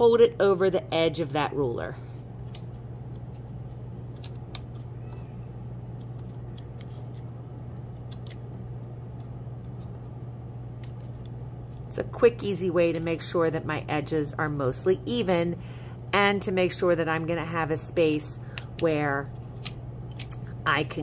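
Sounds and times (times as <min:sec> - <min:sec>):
steady low hum: 0:00.0 - 0:21.0
paper folding crackles: 0:02.1 - 0:12.0.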